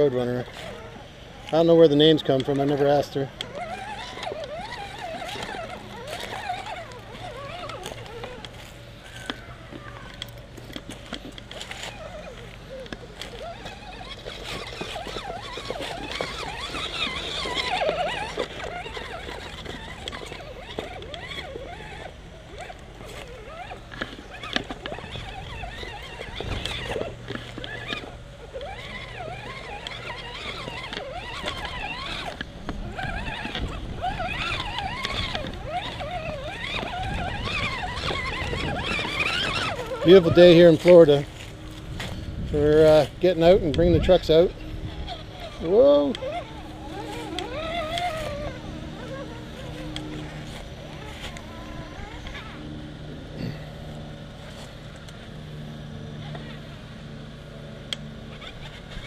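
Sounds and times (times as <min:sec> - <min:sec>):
electric motor whining: 0:00.0 - 0:59.0.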